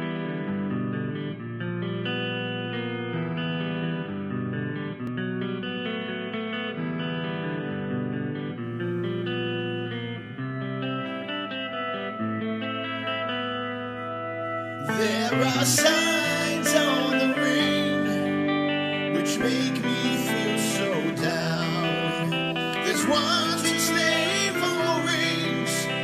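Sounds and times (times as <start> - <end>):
electric guitar picked melody: 0.0 - 26.0.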